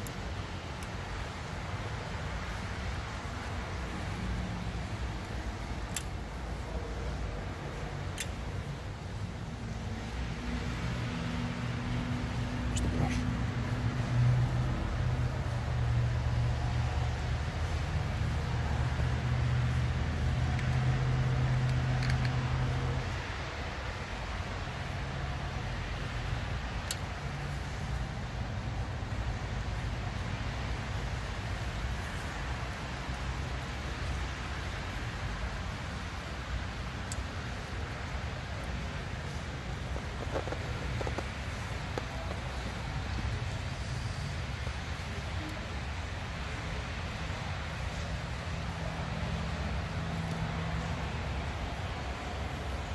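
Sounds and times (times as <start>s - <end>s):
constant hiss: 0.0s - 52.9s.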